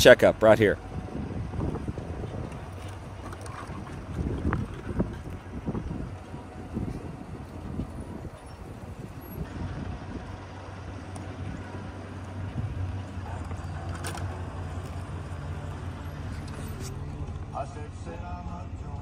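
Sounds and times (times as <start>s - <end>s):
vehicle engine humming: 0.0s - 19.0s.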